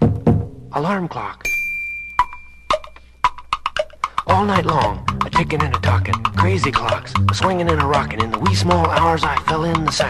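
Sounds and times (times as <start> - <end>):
high bell tone: 1.4 - 3.1
wood block clicks: 2.2 - 10.0.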